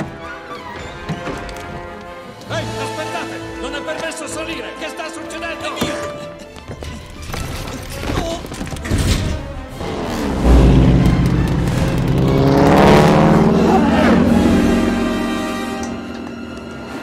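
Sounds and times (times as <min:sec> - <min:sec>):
dramatic orchestral music: 0:00.0 - 0:17.0
heavy booming impacts: 0:09.0 - 0:17.0
propeller plane engine rising: 0:09.7 - 0:17.0.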